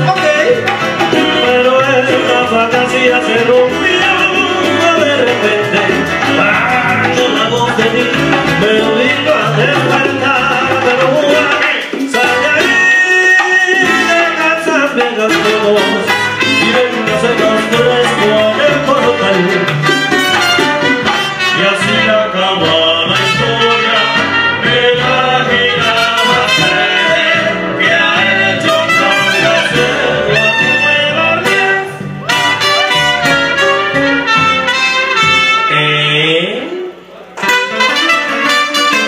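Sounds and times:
maracas: 0:00.0 - 0:35.7
latin band playing salsa: 0:00.0 - 0:39.0
man singing: 0:00.0 - 0:39.0.

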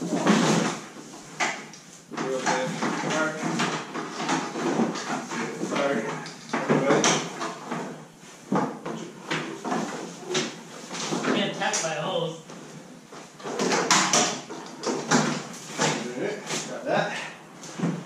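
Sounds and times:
knocks and clatter: 0:00.0 - 0:11.9, 0:12.5 - 0:16.7.

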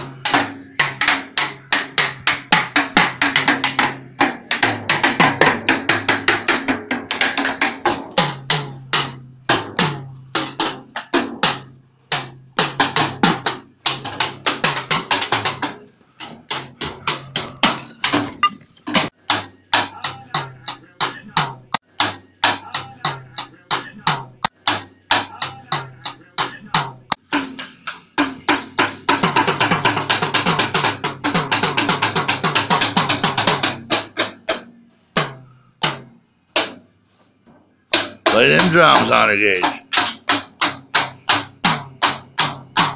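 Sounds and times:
child beating drum kit: 0:00.0 - 0:37.0, 0:37.9 - 0:42.9.

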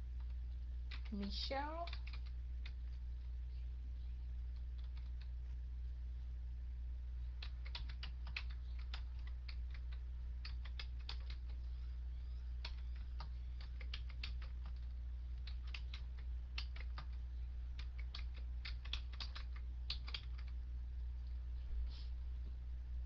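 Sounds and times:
low electrical hum: 0:00.0 - 0:23.0
keyboard typing clicks: 0:00.2 - 0:02.9, 0:04.5 - 0:05.3, 0:07.4 - 0:11.6, 0:12.6 - 0:17.2, 0:17.8 - 0:20.6.

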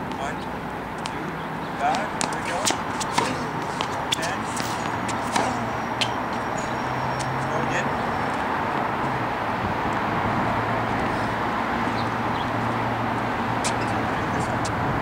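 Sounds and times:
balls bouncing on hard court: 0:01.0 - 0:09.2, 0:13.6 - 0:14.1
tennis balls struck by racket: 0:01.0 - 0:14.8.

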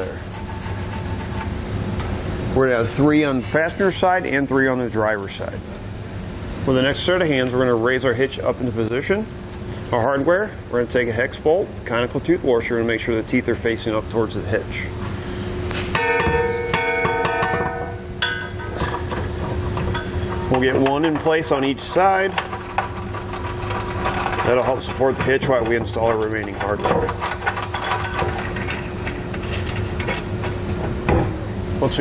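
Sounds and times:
low workshop hum: 0:00.0 - 0:32.0.

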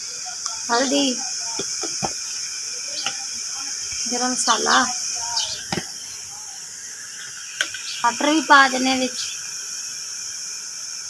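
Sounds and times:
steady high hiss: 0:00.0 - 0:11.0
person speaking: 0:02.7 - 0:06.7.

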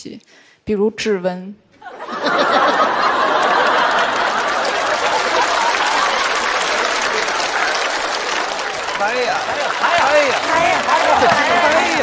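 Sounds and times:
studio audience applauding: 0:02.0 - 0:12.0.

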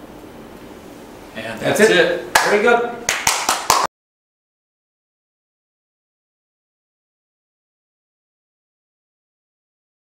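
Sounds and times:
quick hand claps: 0:02.3 - 0:03.9.

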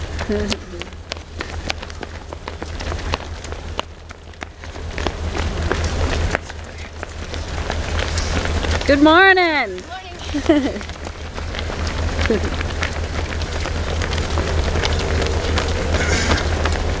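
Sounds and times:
running shoes slapping asphalt: 0:00.0 - 0:17.0
steady low rumble: 0:00.0 - 0:17.0.

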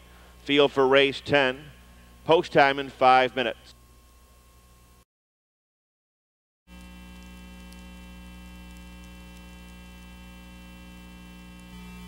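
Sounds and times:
electrical mains hum: 0:00.0 - 0:05.0, 0:06.7 - 0:12.0
faint crackle: 0:06.7 - 0:12.0.

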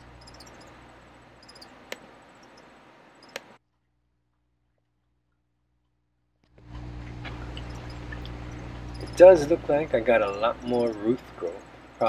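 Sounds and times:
low electrical hum with hiss: 0:06.5 - 0:12.0.

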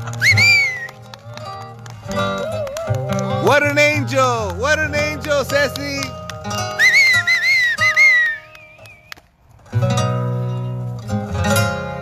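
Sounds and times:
whistled melody: 0:00.2 - 0:00.9, 0:06.7 - 0:09.2.

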